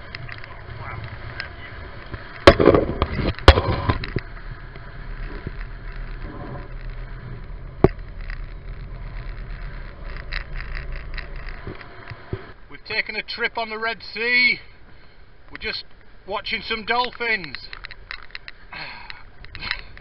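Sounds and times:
boat engine rumble: 0:00.0 - 0:13.5, 0:14.2 - 0:20.0
wind and water noise: 0:00.0 - 0:20.0
sharp knocks: 0:02.4 - 0:04.2.

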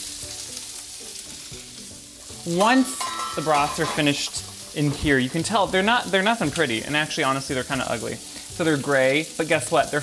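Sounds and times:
vegetables sizzling in a skillet: 0:00.0 - 0:10.0.

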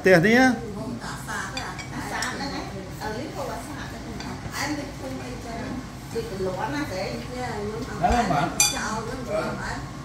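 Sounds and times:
table talk: 0:00.0 - 0:09.8
spoon clinking ceramic bowl: 0:08.1 - 0:08.9.

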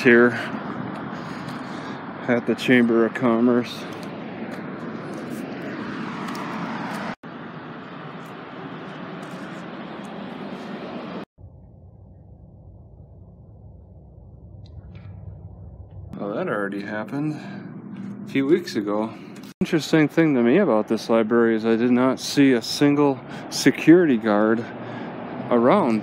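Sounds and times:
dull low rumble: 0:08.6 - 0:19.6.

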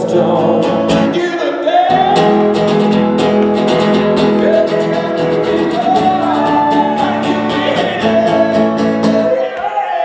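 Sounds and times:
strummed acoustic guitar: 0:00.0 - 0:09.5
man singing: 0:00.0 - 0:10.0.

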